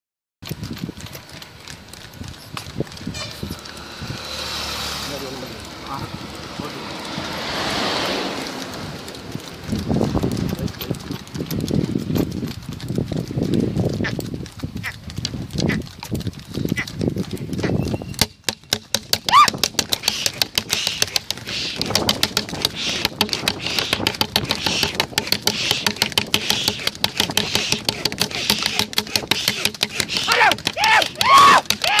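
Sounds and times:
wind on microphone: 0.4 - 5.1, 6.0 - 18.3, 19.1 - 32.0
cart rumbling: 0.4 - 32.0
hooves clip-clopping on asphalt: 0.4 - 32.0.

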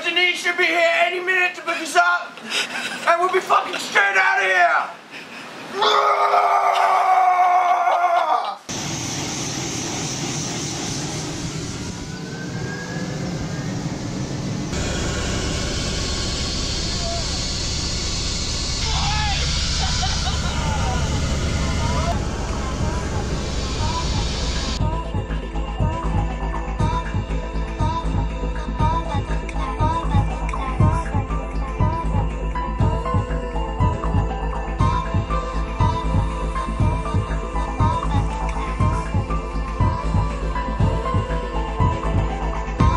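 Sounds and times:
wind: 2.3 - 24.8
helicopter rotor and engine: 8.7 - 24.8
man shouting: 18.8 - 19.6
music: 18.8 - 42.9.

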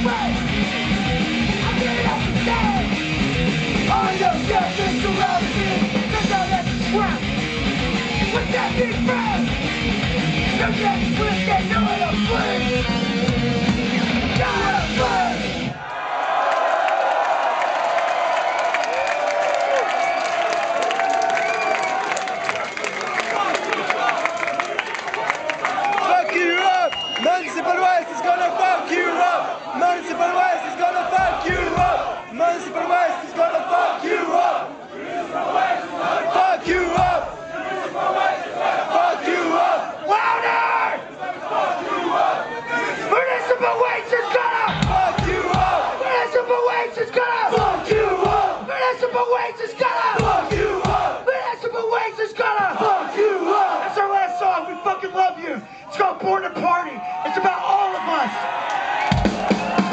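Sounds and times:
thrash metal song: 0.0 - 15.8
crowd cheering and yelling: 0.0 - 59.9
low thumps from stage: 31.1 - 32.2, 36.6 - 37.4, 44.7 - 45.8, 50.2 - 51.1.

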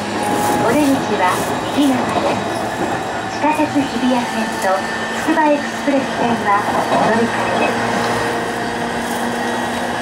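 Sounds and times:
train rolling noise with hum: 0.0 - 10.0.

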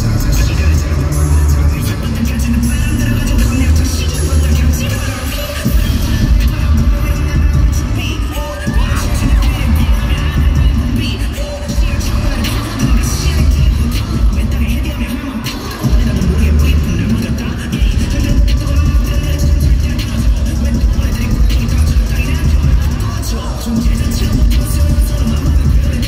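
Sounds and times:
live pop song with heavy bass: 0.0 - 26.0
man singing: 0.0 - 26.0.

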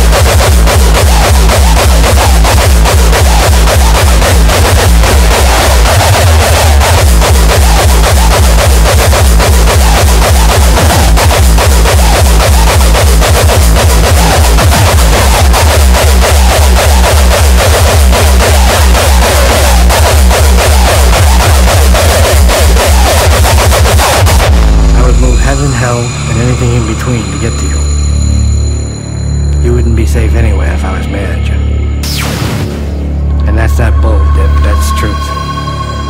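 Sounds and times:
industrial hardcore electronic music: 0.0 - 36.0.

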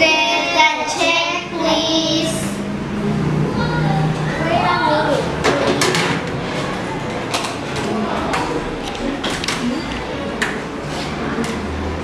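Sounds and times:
children chattering: 0.0 - 12.0.

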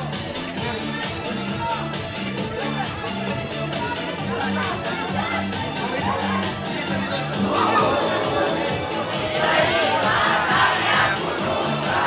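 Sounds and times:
karaoke backing track: 0.0 - 12.0
children singing and shouting: 4.5 - 12.0.

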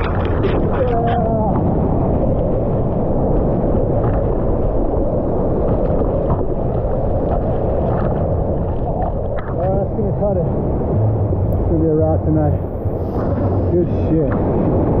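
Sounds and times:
whitewater rushing: 7.8 - 14.3.

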